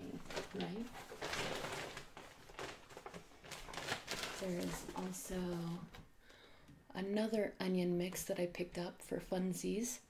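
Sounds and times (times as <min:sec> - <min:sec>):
shopping bag rustling and crinkling: 0:00.0 - 0:05.8.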